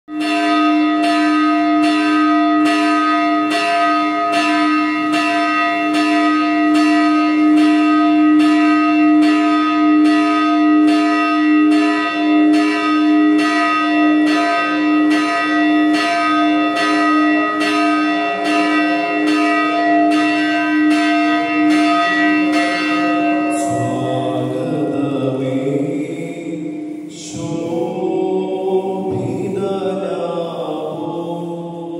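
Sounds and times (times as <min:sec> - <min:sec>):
church bell ringing: 0:00.1 - 0:31.9.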